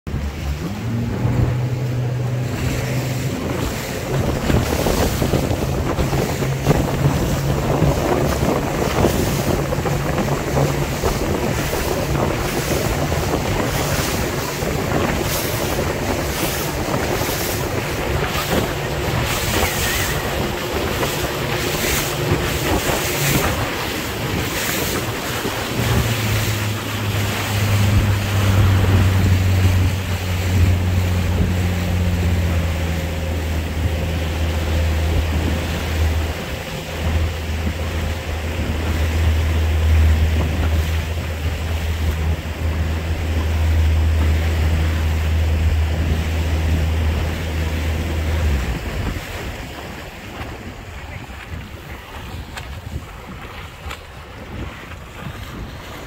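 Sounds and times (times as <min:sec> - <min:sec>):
boat motor running: 0:00.1 - 0:56.0
water rushing past: 0:00.1 - 0:56.0
wind buffeting microphone: 0:00.1 - 0:56.0.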